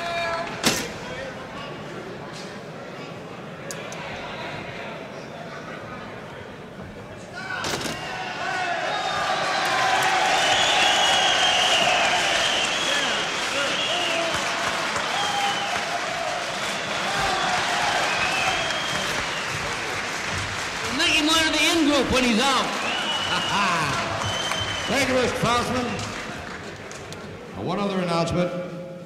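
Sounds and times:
audience applauding and cheering: 0:08.2 - 0:27.3.

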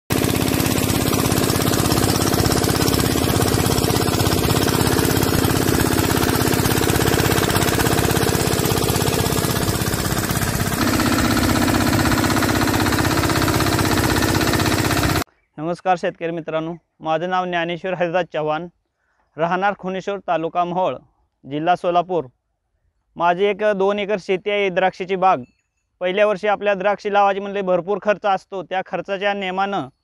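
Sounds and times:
diesel engine thudding: 0:00.1 - 0:15.2.

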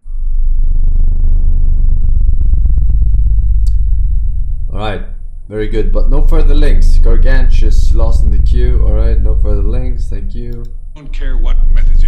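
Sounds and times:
distorted electronic bass drone: 0:00.0 - 0:12.0.

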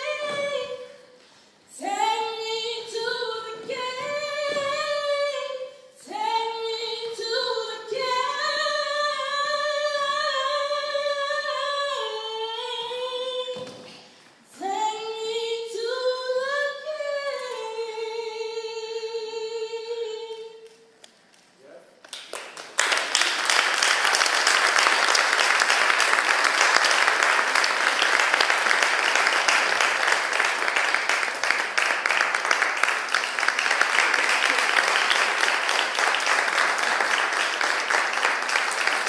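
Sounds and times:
singer breathing: 0:01.1 - 0:01.7
woman singing unaccompanied: 0:01.7 - 0:13.7, 0:14.5 - 0:20.7.

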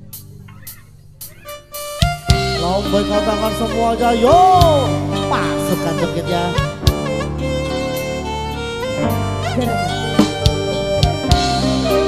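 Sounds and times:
drum kit hits: 0:00.0 - 0:03.0, 0:06.6 - 0:07.3, 0:09.0 - 0:12.0
dangdut band playing: 0:00.0 - 0:12.0
steady bass: 0:00.0 - 0:12.0
held melody line: 0:01.4 - 0:12.0.

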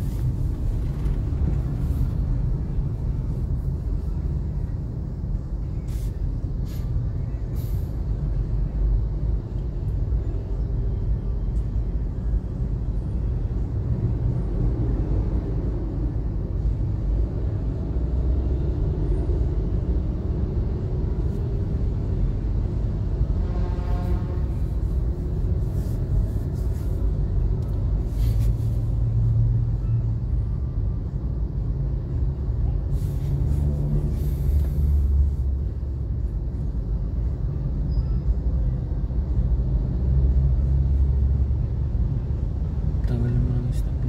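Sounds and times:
traffic: 0:00.0 - 0:44.0.

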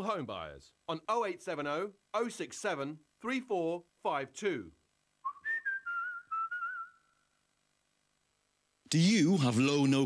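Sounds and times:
person whistling a tune: 0:05.3 - 0:07.2.

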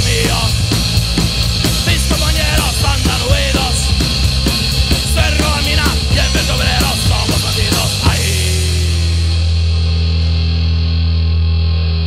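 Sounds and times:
distorted bass chord ringing: 0:00.0 - 0:12.0.

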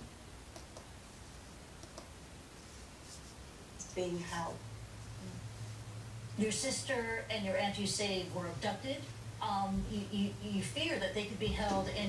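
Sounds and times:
faint computer mouse clicks: 0:00.5 - 0:00.9, 0:01.8 - 0:02.1.

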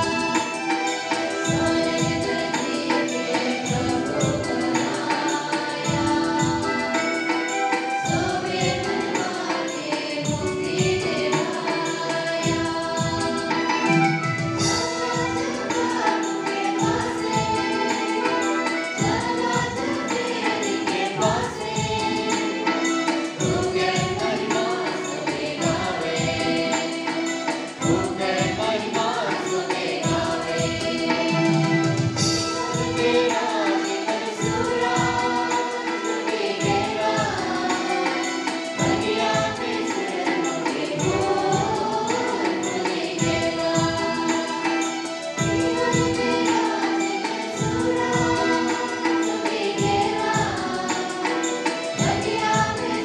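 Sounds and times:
drums played with sticks: 0:00.0 - 0:53.0
electronic keyboard: 0:00.0 - 0:53.0
voices singing a hymn: 0:00.0 - 0:53.0.

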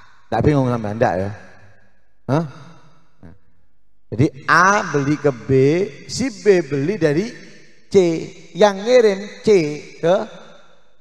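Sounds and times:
man saying hah into microphone: 0:02.3 - 0:03.4, 0:04.2 - 0:07.3.

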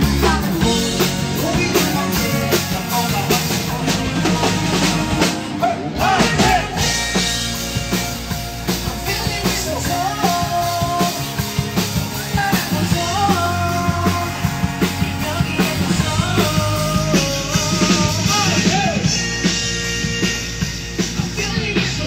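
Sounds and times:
men singing into microphones: 0:00.0 - 0:07.1, 0:08.8 - 0:19.3, 0:21.2 - 0:22.0
loud rock music: 0:00.0 - 0:22.0.

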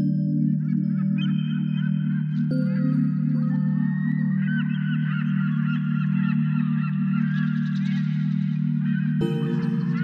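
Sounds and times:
birds chirping: 0:00.0 - 0:10.0
low ambient music drone: 0:00.0 - 0:10.0.

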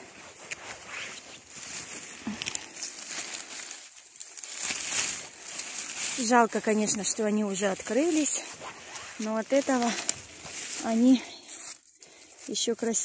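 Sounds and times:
footsteps rustling dry leaves: 0:00.0 - 0:13.0
plants brushing: 0:00.0 - 0:13.0.

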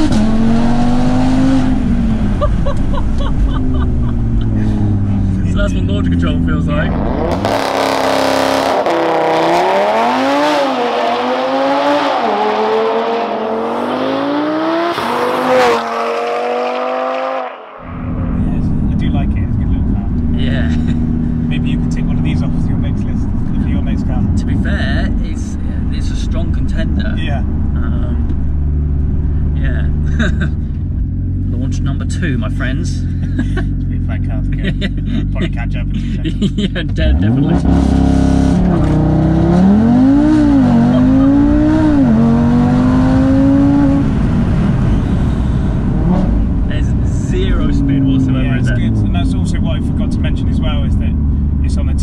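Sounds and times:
car engine accelerating hard: 0:00.0 - 0:52.0
people laughing: 0:02.4 - 0:05.1, 0:30.0 - 0:30.6, 0:33.1 - 0:37.0.

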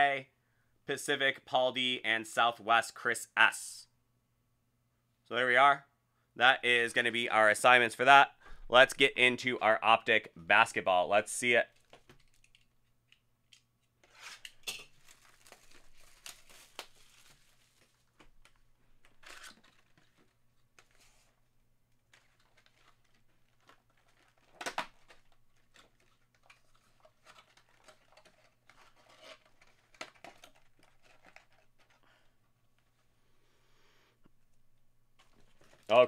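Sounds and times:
plastic wrap tearing and crinkling: 0:14.4 - 0:21.3, 0:21.9 - 0:32.0, 0:35.2 - 0:36.0.

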